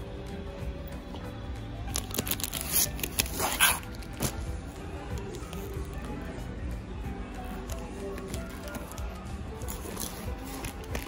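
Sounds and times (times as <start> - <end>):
plastic packaging crinkling: 1.9 - 4.4, 7.6 - 11.0.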